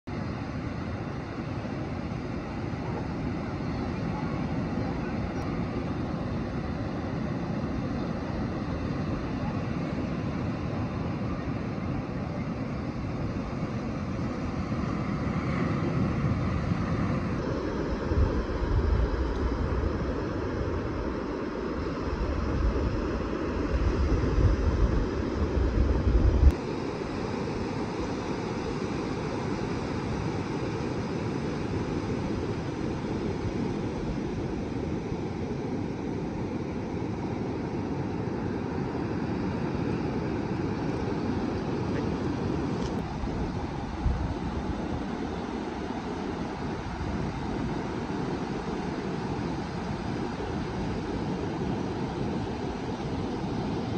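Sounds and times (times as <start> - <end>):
ocean surf breaking on beach: 0.1 - 53.9
wind buffeting microphone: 2.4 - 26.6, 40.0 - 53.9.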